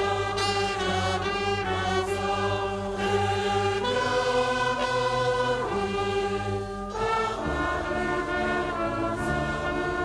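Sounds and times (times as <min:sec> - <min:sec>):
choir singing: 0:00.0 - 0:10.0
flute: 0:00.0 - 0:10.0
violin: 0:00.0 - 0:10.0.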